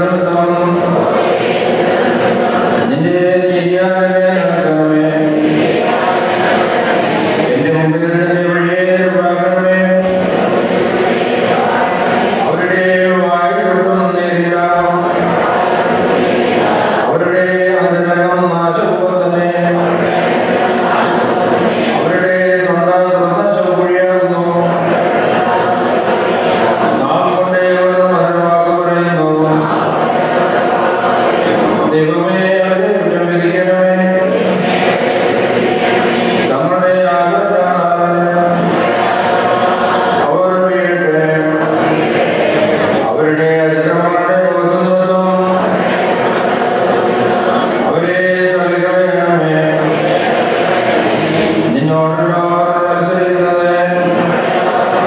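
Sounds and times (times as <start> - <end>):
low male voice chanting: 0.0 - 6.6, 7.2 - 30.0, 30.9 - 55.0.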